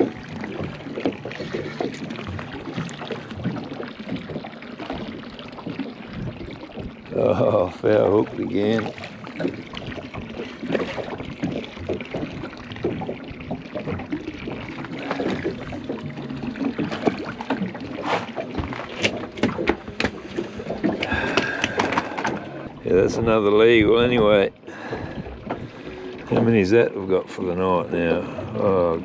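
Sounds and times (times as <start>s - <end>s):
water splashing against boat: 0.0s - 29.0s.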